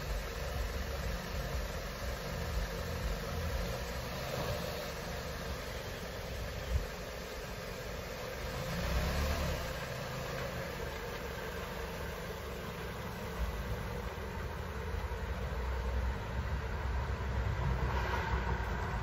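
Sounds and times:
tyres on gravel: 0.0 - 16.9
car engine rumbling: 0.0 - 19.0.

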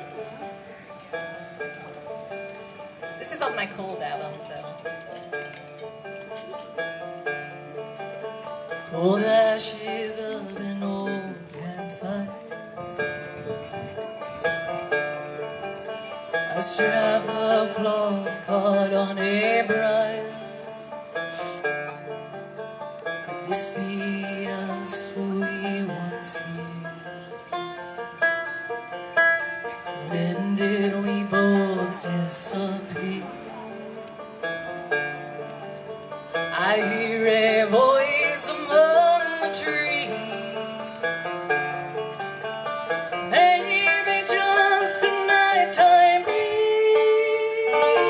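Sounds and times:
banjo picking: 0.0 - 48.0.

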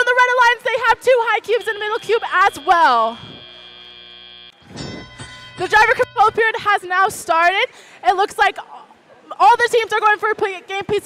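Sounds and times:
electronic buzzer tone: 1.0 - 6.4
bright electronic signal tone: 1.4 - 6.4.

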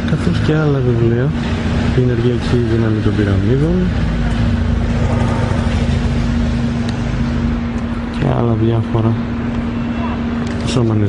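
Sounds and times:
city street traffic: 0.0 - 11.0
car engine running: 0.1 - 8.5.

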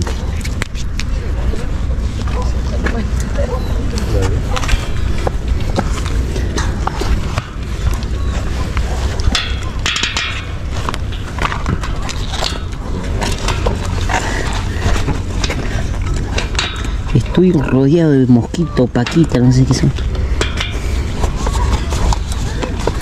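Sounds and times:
steady low rumble: 0.0 - 23.0.

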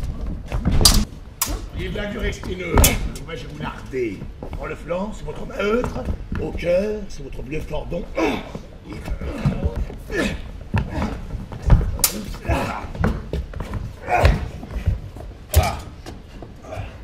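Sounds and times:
feet stamping: 0.0 - 17.0
people shouting and grunting: 7.9 - 17.0.

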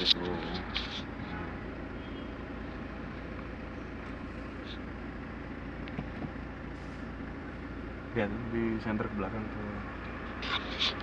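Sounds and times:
car engine idling: 0.0 - 11.0
muffled traffic outside: 0.0 - 11.0.

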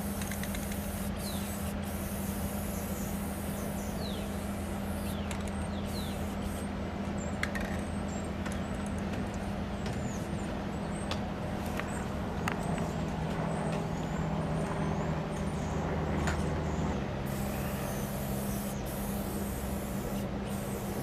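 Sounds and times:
low engine drone: 0.0 - 21.0.

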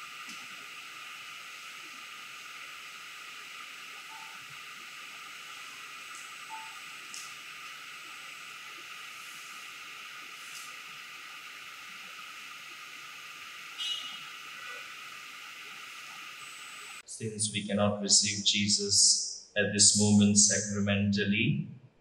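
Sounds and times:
room tone hiss: 0.0 - 22.0.

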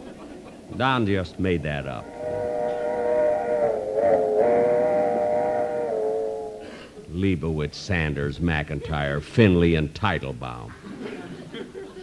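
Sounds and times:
train whistle chord: 1.0 - 7.2.

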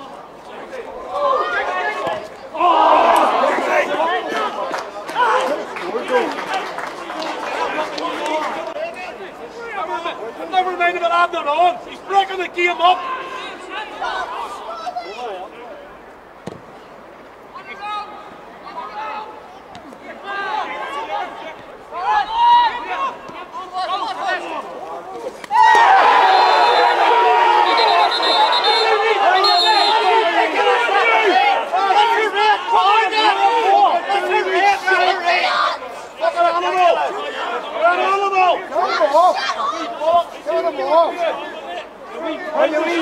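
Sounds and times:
men's voices calling: 0.0 - 16.4, 17.0 - 43.0
many voices shouting: 1.0 - 6.6, 25.4 - 43.0.

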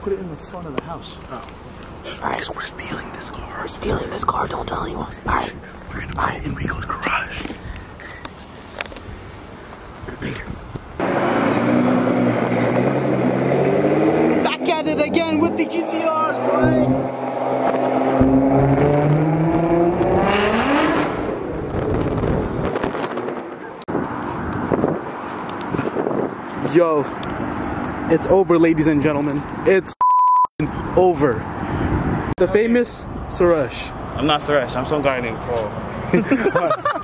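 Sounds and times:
background noise: 0.0 - 37.0.

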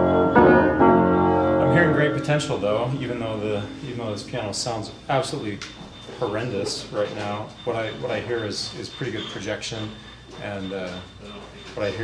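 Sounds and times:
out-of-tune upright piano chords: 0.0 - 12.0.

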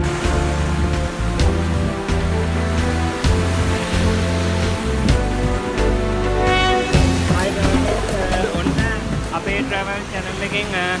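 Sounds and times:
background music with low notes: 0.0 - 11.0
surf breaking on rocks: 0.0 - 11.0.

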